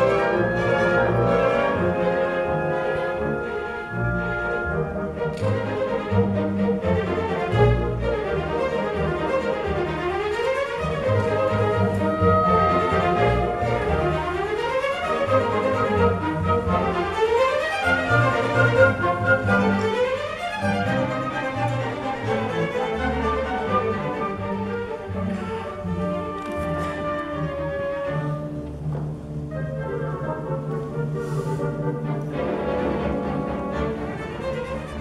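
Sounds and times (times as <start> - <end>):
string orchestra playing: 0.0 - 35.0.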